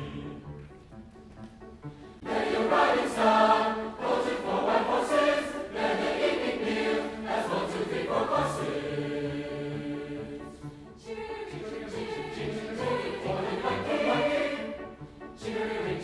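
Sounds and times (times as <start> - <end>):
mixed choir singing folk song: 0.0 - 0.8, 2.2 - 16.0.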